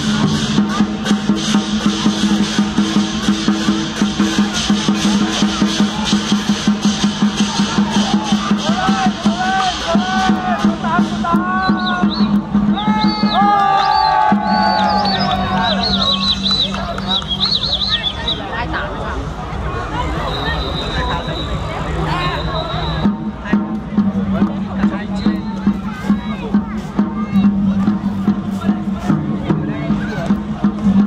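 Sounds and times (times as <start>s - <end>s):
cymbal beats: 0.0s - 18.3s
drum beats: 0.0s - 18.8s, 21.9s - 31.0s.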